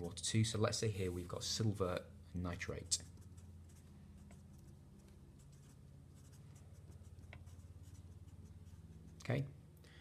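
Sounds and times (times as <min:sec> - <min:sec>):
low electrical hum: 0:00.0 - 0:10.0
marker scratching on paper: 0:03.0 - 0:09.2.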